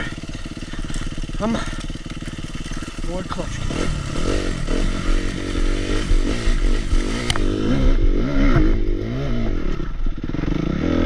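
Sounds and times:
dirt bike engine revving: 0.0s - 11.0s.

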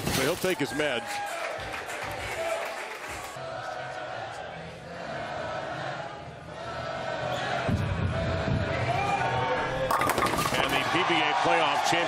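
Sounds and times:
bowling ball rolling on wooden lane: 9.9s - 10.8s
bowling pins crashing: 9.9s - 11.0s.

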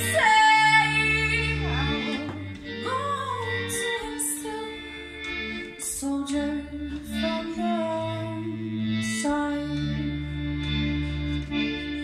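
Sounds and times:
accordion chords: 0.0s - 12.0s.

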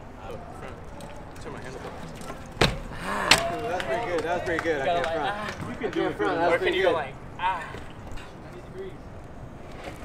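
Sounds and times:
bike landing on concrete: 1.0s - 4.0s.

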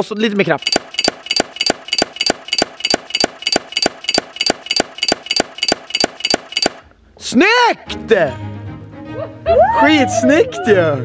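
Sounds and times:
rapid even ticking with ring: 0.4s - 6.8s.

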